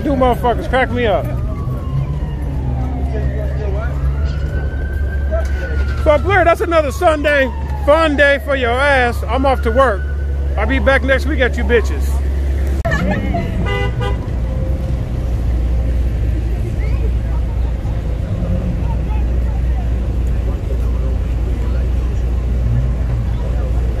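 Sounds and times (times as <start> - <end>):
car engines rumbling: 0.0 - 24.0
car horn toot: 13.6 - 14.3.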